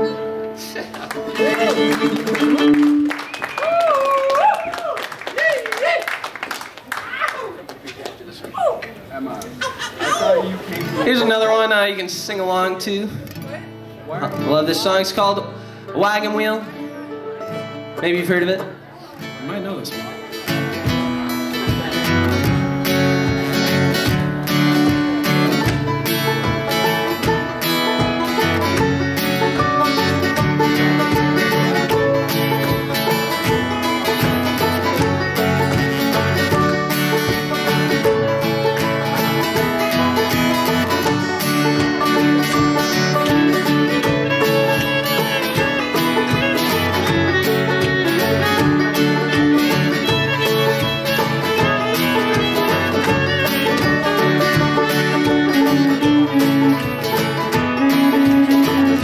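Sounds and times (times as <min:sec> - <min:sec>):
banjo picking: 0:00.0 - 0:03.3, 0:10.2 - 0:59.0
acoustic guitar strumming: 0:00.0 - 0:03.6, 0:10.7 - 0:59.0
fiddle: 0:00.0 - 0:03.8, 0:10.1 - 0:59.0.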